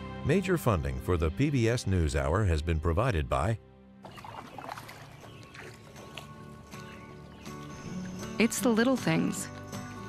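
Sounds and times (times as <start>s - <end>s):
soft music tones: 0.2s - 10.0s
paddle pulling through water: 4.0s - 8.5s.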